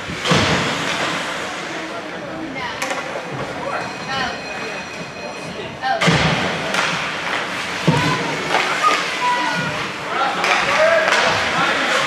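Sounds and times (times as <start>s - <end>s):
people shouting: 7.8s - 11.3s.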